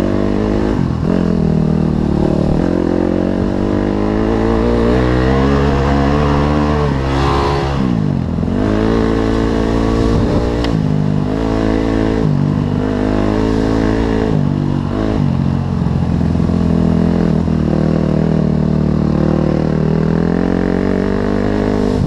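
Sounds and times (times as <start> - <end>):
dirt bike engine revving: 0.0 - 22.0.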